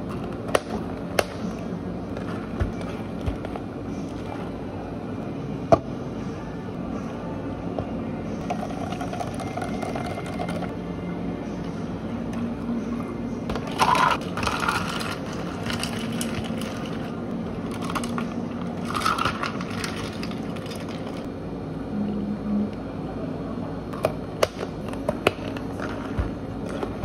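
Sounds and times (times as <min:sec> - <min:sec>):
steady low hum: 0:00.0 - 0:27.0
ice cubes clattering into cups: 0:13.6 - 0:17.1, 0:18.8 - 0:21.3.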